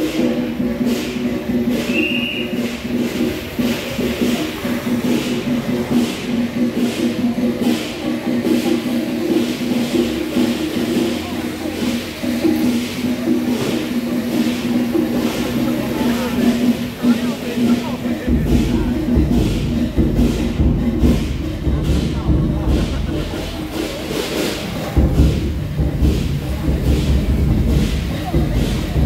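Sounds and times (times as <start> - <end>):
percussive beat: 0.0 - 29.0
voices: 0.0 - 29.0.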